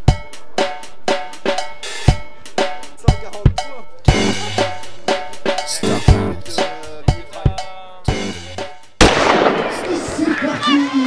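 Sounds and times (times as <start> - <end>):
drum-led music: 0.0 - 10.8
crowd noise: 0.0 - 11.0
starting gun shot: 9.0 - 10.3.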